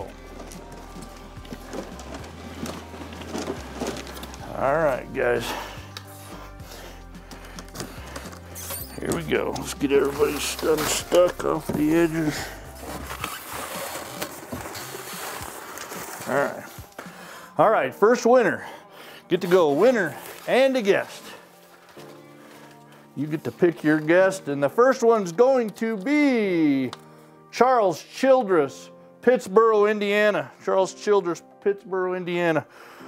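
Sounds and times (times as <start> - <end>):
background music: 0.0 - 33.0
paper slips rustling in raffle drum: 1.0 - 4.6, 8.3 - 17.1, 19.4 - 26.9.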